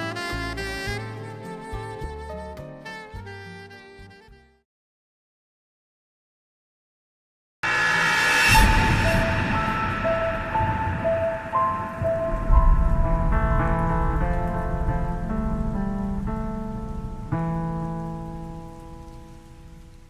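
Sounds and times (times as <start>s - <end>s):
deep hit: 7.6s - 16.5s
logo music sting: 7.6s - 16.7s
low rumble: 7.6s - 18.8s.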